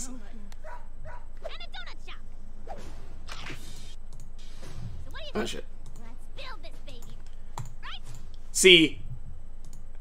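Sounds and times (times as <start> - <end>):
computer mouse clicks: 9.6 - 10.0.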